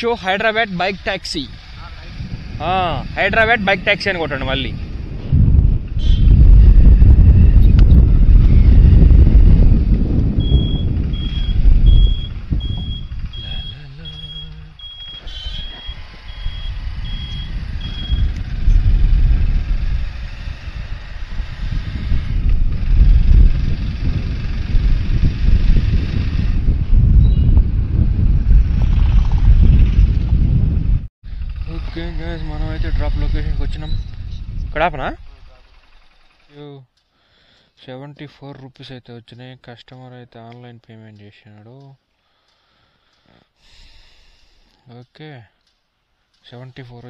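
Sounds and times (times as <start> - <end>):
wind buffeting microphone: 0.0 - 36.0
motorcycle engine: 0.4 - 36.6
high repeating beep: 10.4 - 18.3.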